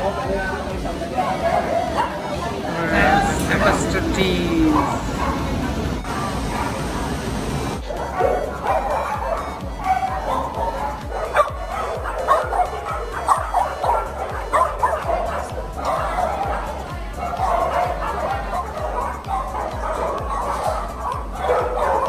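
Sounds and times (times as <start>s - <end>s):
background music: 0.0s - 22.0s
dogs barking and yipping: 0.1s - 3.8s, 4.6s - 22.0s.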